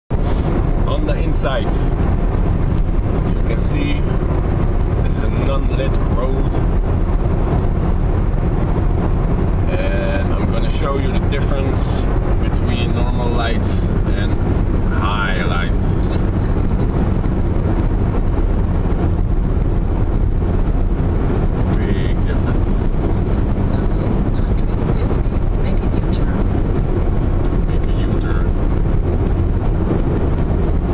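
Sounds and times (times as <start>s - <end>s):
road and engine rumble in car cabin: 0.1s - 30.9s.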